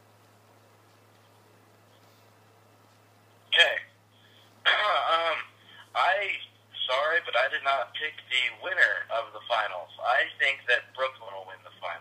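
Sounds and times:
low electrical hum: 0:00.0 - 0:12.0
man speaking: 0:03.5 - 0:03.9, 0:04.7 - 0:12.0.

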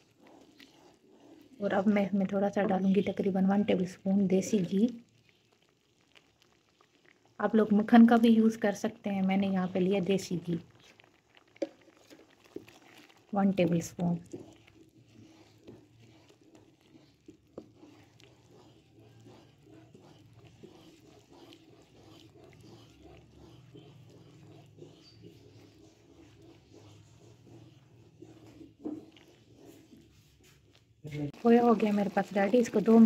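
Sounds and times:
spatula scraping a pan: 0:00.0 - 0:33.0
thick mixture bubbling: 0:00.0 - 0:33.0.

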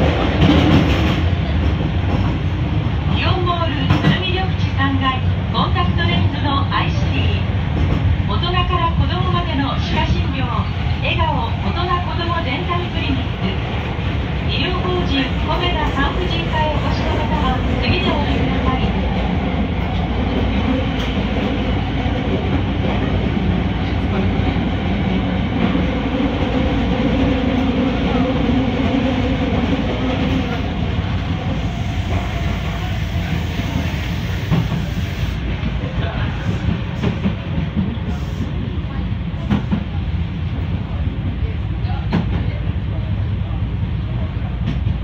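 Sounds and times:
subway train rumbling: 0:00.0 - 0:45.0.

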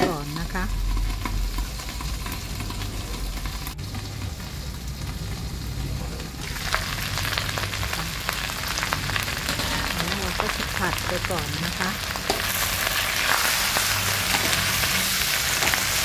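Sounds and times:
vegetables sizzling in hot oil: 0:00.0 - 0:16.0.

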